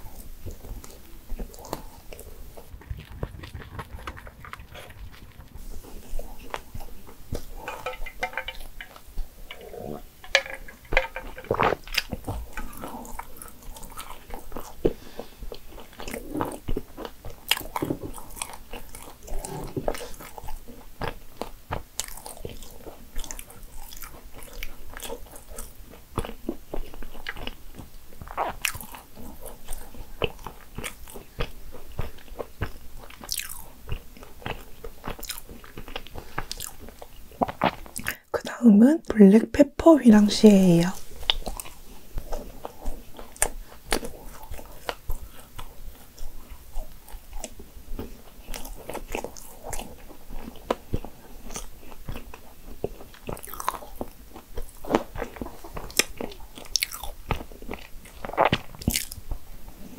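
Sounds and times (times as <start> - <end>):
nuts crunching while chewing: 0.0 - 38.3, 41.0 - 59.9
wet mouth sounds: 0.0 - 38.3, 40.4 - 59.9.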